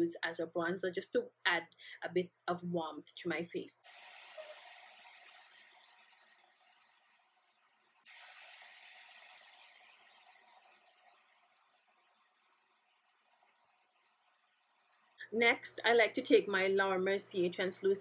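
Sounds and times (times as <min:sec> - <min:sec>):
faint hiss: 0:03.8 - 0:06.4, 0:08.0 - 0:11.0.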